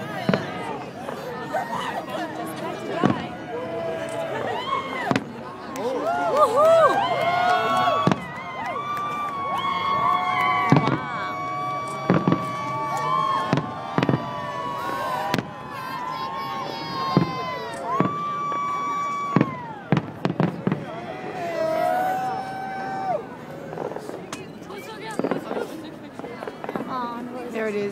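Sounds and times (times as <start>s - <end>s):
fireworks bangs: 0.0s - 5.7s, 7.2s - 21.9s, 23.6s - 27.7s
onlookers calling out: 0.0s - 27.6s.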